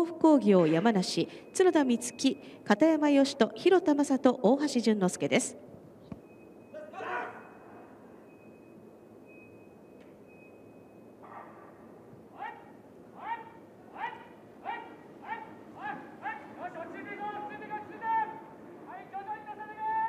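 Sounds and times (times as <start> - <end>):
rhythmic shouts of encouragement: 6.8 - 8.0, 12.3 - 20.0.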